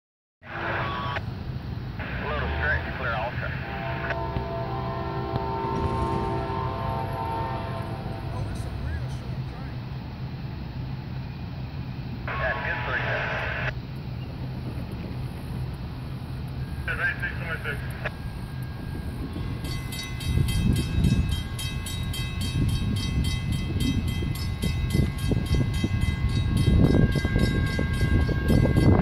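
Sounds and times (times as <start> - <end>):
low rumble: 1.2 - 17.0
distant locomotive horn: 2.0 - 10.3.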